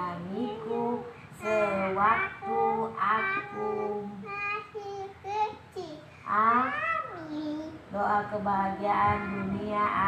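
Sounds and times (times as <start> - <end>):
girl singing drawn-out syllable: 0.4 - 5.0, 8.9 - 10.0.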